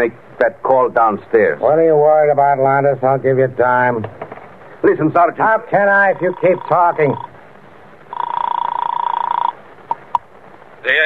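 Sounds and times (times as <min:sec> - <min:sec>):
telephone buzzing ring: 0:06.1 - 0:07.3, 0:08.1 - 0:09.6.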